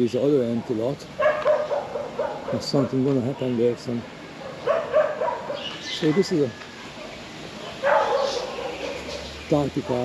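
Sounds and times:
dog barking: 0:01.2 - 0:03.0, 0:04.4 - 0:05.8, 0:07.0 - 0:10.0.

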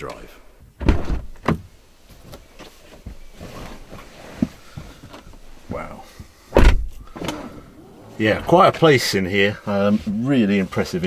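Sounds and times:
car door shutting with heavy thump: 0:00.8 - 0:01.6, 0:06.5 - 0:07.8
small knocks and rustling: 0:00.9 - 0:07.2.

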